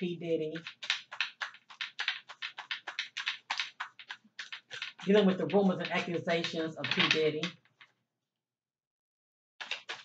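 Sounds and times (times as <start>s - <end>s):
cards being shuffled by hand: 0.0s - 8.0s, 9.6s - 10.0s.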